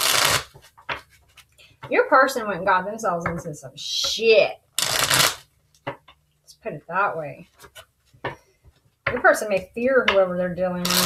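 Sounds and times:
cards shuffled by hand: 0.0s - 1.6s.

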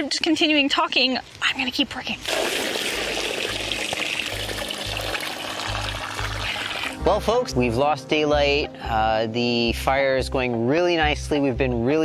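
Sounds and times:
sap pouring into a pan: 2.2s - 7.0s
background music with bass: 3.1s - 12.0s.

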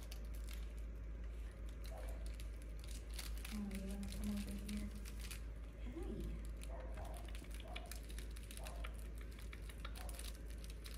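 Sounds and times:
puppy claws clicking on fabric mat: 6.6s - 10.9s.

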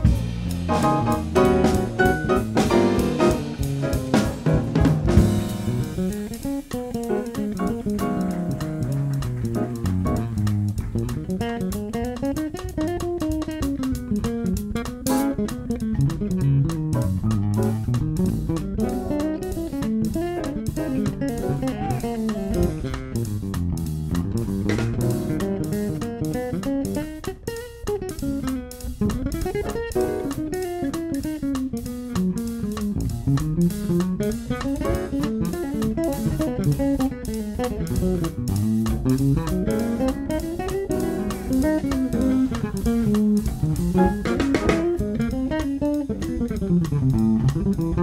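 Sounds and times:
drum cymbals keeping time: 0.0s - 10.7s, 11.7s - 47.3s
electric bass jazz solo: 0.0s - 48.0s.

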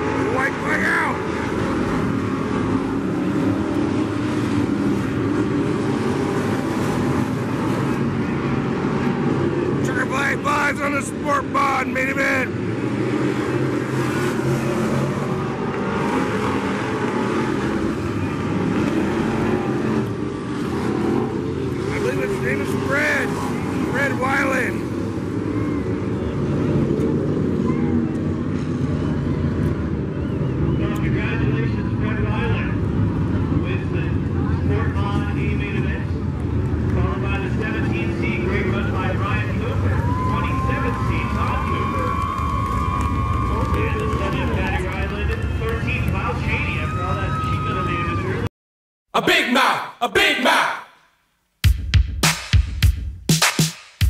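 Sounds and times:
race car engines droning: 0.0s - 48.5s
people's voices: 9.8s - 12.6s, 21.8s - 24.8s, 30.0s - 48.5s, 49.2s - 51.0s.

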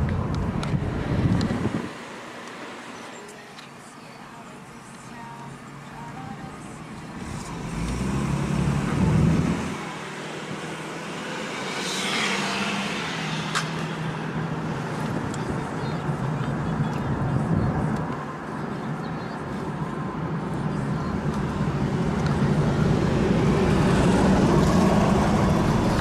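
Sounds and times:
wind rushing: 0.0s - 2.0s
car engine: 0.0s - 26.0s
passing traffic: 0.0s - 26.0s.

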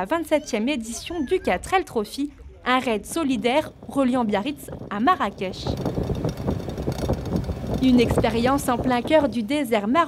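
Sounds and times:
car engine running: 2.8s - 10.0s
wind buffeting microphone: 2.8s - 10.0s.

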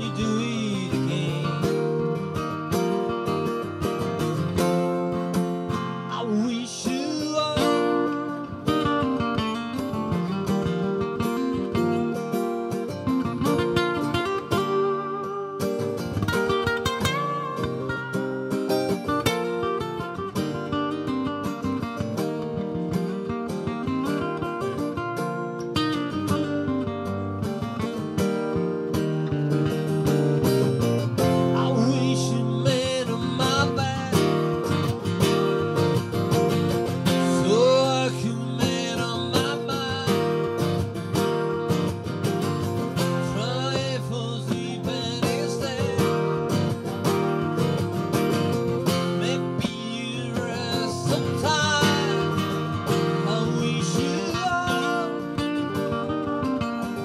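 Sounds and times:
acoustic guitars strumming: 0.0s - 57.0s.

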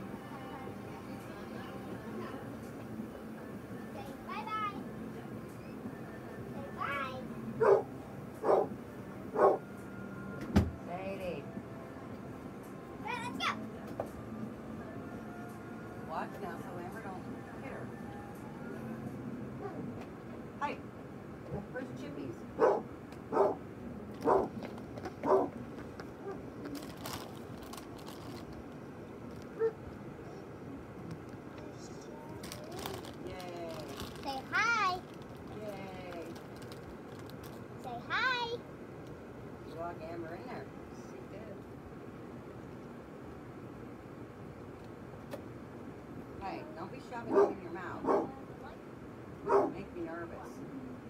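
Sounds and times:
plastic snack bag crinkling: 26.6s - 29.5s, 32.2s - 37.6s.

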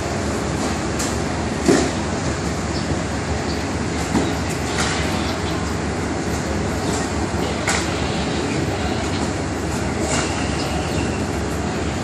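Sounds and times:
diesel train running: 0.0s - 12.0s.

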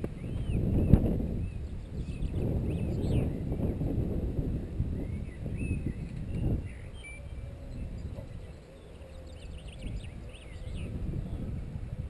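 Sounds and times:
wind rumbling on microphone: 0.0s - 12.0s
faint bird chirps: 5.0s - 11.5s.

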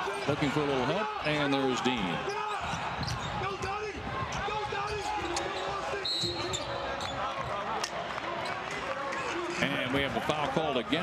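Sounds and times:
crowd chatter: 0.0s - 11.0s
referee's whistle: 5.9s - 6.9s.

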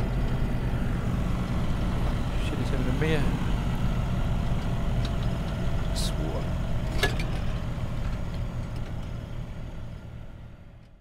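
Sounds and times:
piston engines idling: 0.0s - 10.8s.

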